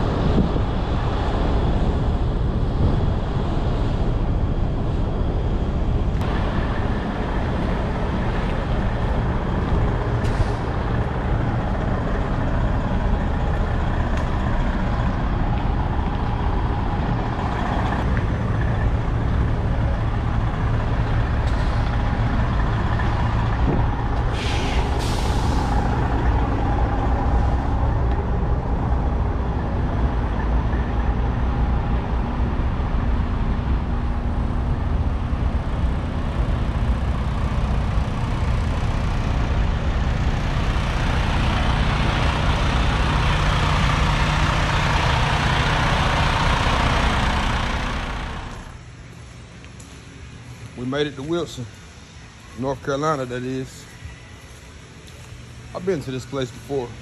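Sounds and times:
truck diesel engines running: 0:00.0 - 0:57.0
air brake hiss: 0:24.3 - 0:26.0.

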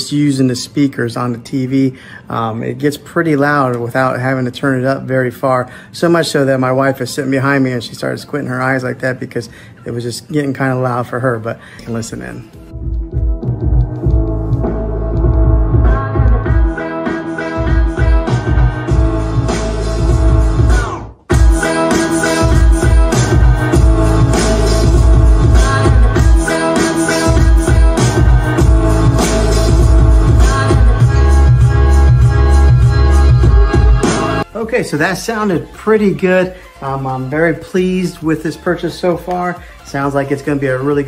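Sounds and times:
music with heavy bass: 0:12.7 - 0:34.7.

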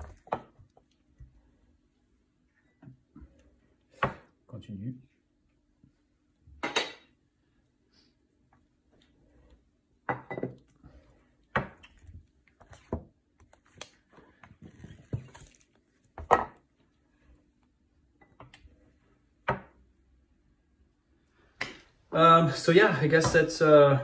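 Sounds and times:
knocks taps and scrapes on screen: 0:10.3 - 0:16.9.

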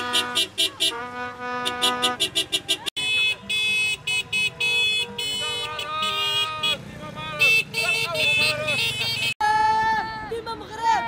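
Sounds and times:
car horns honking: 0:00.0 - 0:09.4
people shouting: 0:05.5 - 0:11.0.

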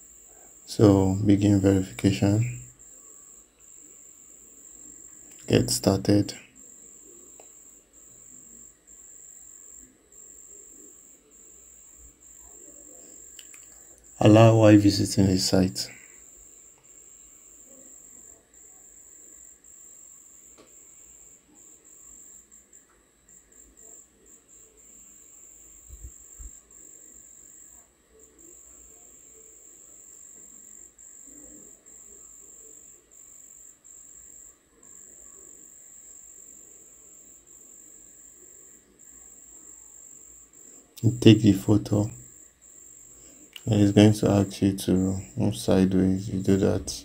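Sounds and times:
faint high-pitched trill: 0:00.0 - 0:47.0.

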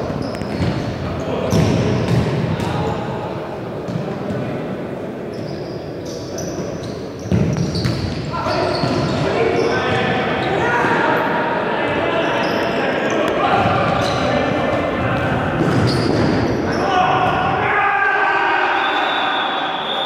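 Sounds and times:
players shouting in a hall: 0:08.3 - 0:20.0.

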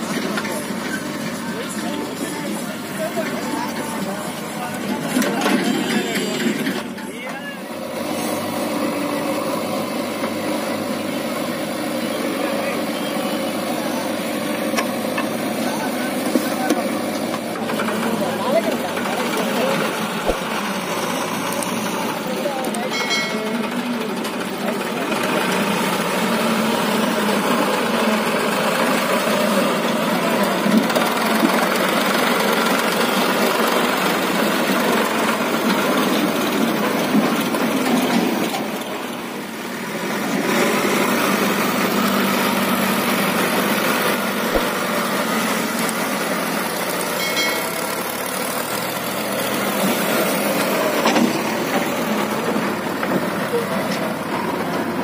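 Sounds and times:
diesel engines running: 0:00.0 - 0:55.0.

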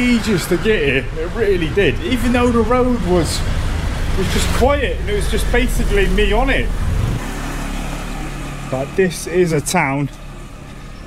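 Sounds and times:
motor scooter engine humming: 0:00.0 - 0:11.0.

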